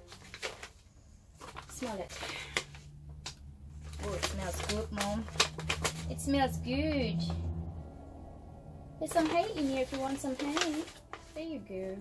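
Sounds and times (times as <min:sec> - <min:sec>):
paper bag rustling: 0:00.0 - 0:02.9, 0:03.8 - 0:06.2, 0:09.0 - 0:12.0
low steady hum: 0:00.0 - 0:12.0.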